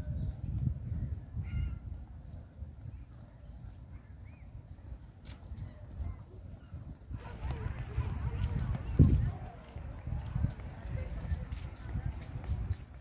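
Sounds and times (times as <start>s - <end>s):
low rumble on microphone: 0.0s - 13.0s.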